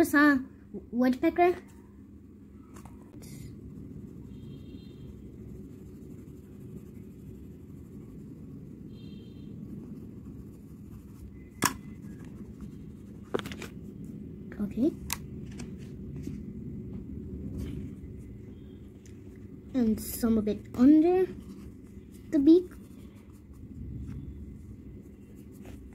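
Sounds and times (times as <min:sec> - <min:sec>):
steady low hum: 0:00.0 - 0:25.9
pencil scratching on paper: 0:03.8 - 0:08.7, 0:09.6 - 0:11.2.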